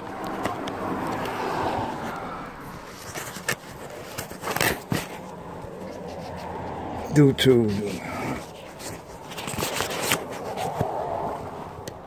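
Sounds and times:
hand rubbing phone microphone: 2.0s - 11.0s.

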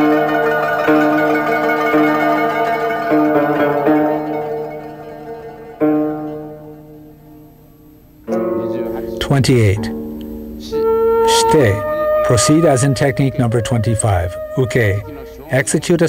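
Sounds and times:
plucked zither notes: 0.0s - 6.8s, 8.3s - 16.0s
new musical sound: 0.0s - 7.4s, 8.2s - 16.0s.

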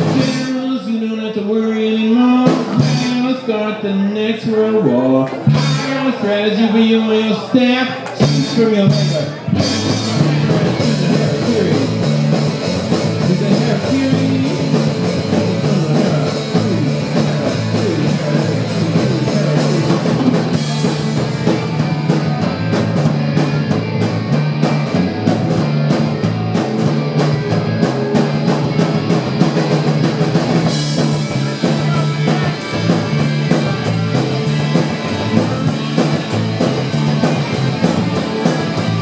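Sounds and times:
repeating bass line: 0.0s - 0.6s, 2.1s - 3.5s, 4.9s - 7.1s, 8.2s - 39.0s
steady drum beat: 0.0s - 0.6s, 2.4s - 3.3s, 5.5s - 6.2s, 8.2s - 39.0s
rock band playing: 0.0s - 39.0s.

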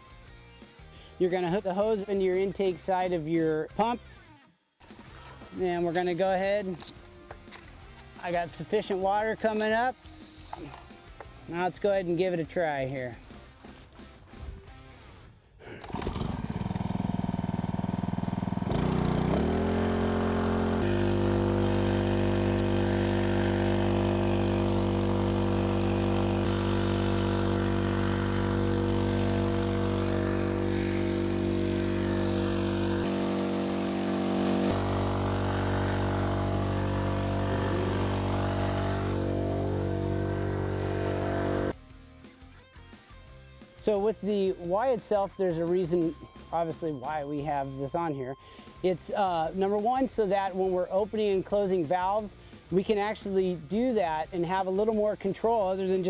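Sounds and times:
small pump engine running: 15.8s - 41.8s.

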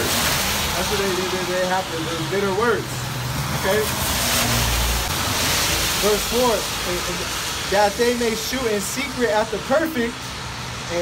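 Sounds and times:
tyre hiss on wet road: 0.0s - 11.0s.

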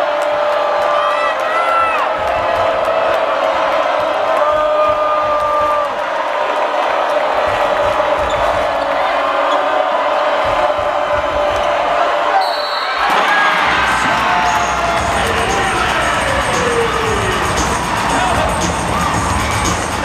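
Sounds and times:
arena crowd noise and voices: 0.0s - 20.0s
crowd cheering: 0.0s - 20.0s.

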